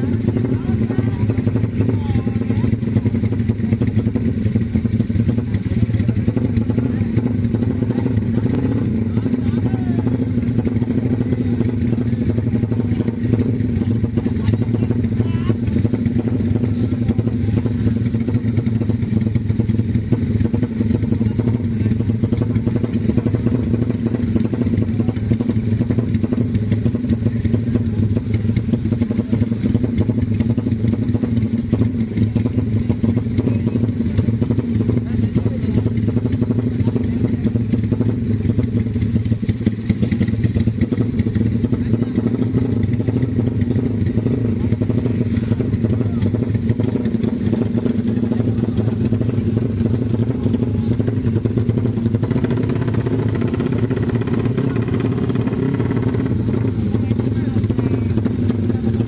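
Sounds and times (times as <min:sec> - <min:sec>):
motorcycle engine idling: 0:00.0 - 0:59.0.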